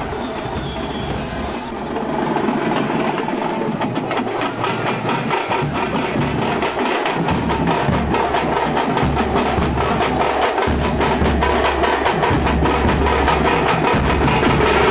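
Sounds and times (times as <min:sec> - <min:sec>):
barrel drums beaten with sticks: 0:00.0 - 0:14.9.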